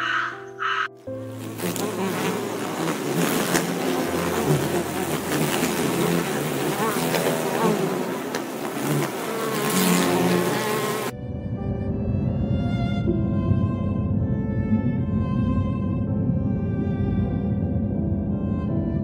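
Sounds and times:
bees buzzing: 0:00.0 - 0:11.1.

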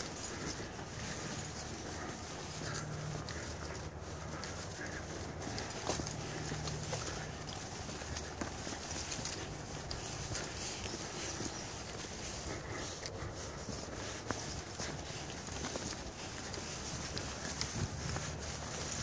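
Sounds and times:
footsteps on dirt trail: 0:00.0 - 0:19.0.

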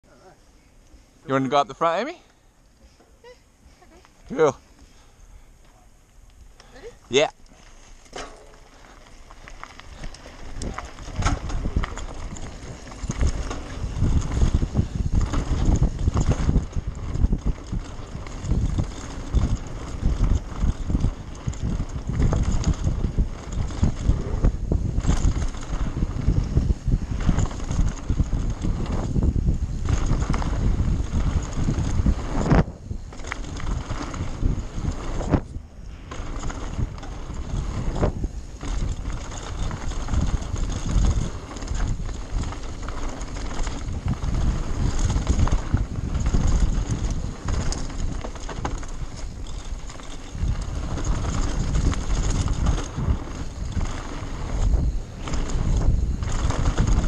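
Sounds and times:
bike rattling and knocking: 0:07.1 - 0:57.0
tyres crunching over stones: 0:07.5 - 0:23.6
wind buffeting microphone: 0:07.9 - 0:57.0.

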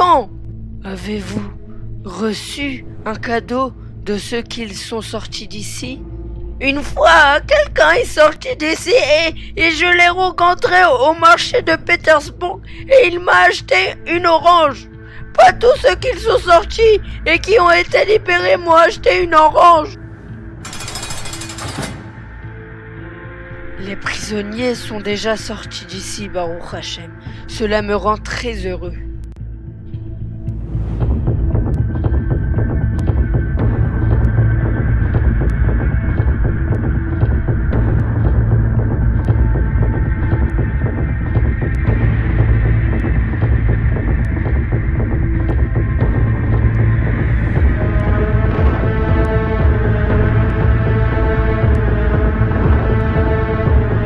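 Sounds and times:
soft background music: 0:00.0 - 0:54.0
dark low drone: 0:11.6 - 0:54.0
fast repeating rattle: 0:20.6 - 0:22.3
throbbing bass pulse: 0:30.3 - 0:54.0.

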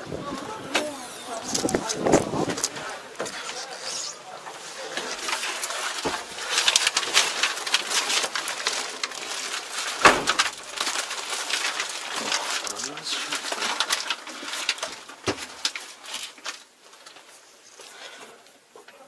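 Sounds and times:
background voices: 0:00.0 - 0:15.1.

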